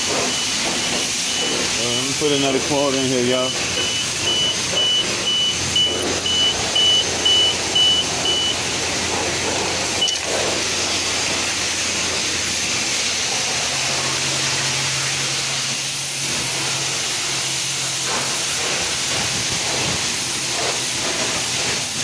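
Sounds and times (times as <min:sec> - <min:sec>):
pressure washer spraying water: 0:00.0 - 0:22.0
short beep: 0:03.4 - 0:08.6, 0:10.0 - 0:10.3.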